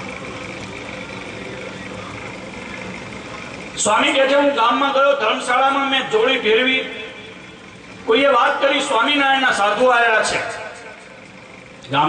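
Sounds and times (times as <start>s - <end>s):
faint steady tones: 0.0s - 12.0s
man speaking through a microphone: 8.1s - 10.8s.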